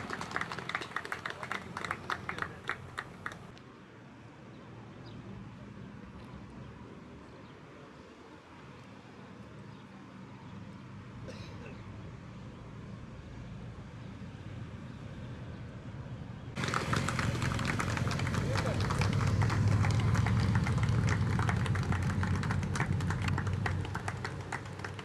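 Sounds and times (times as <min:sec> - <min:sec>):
spectators applauding: 0:00.0 - 0:03.5, 0:16.6 - 0:25.0
motorcycle engines: 0:00.0 - 0:03.6, 0:11.8 - 0:25.0.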